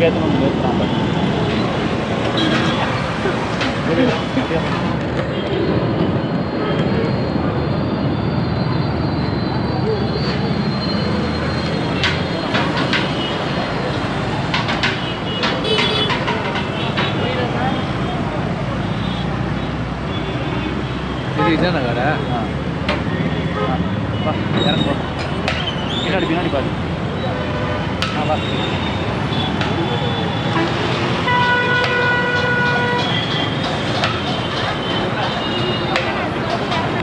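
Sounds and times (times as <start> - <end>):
people's voices: 0.0 - 31.2, 31.8 - 37.0
motorbike and car engines: 0.0 - 37.0.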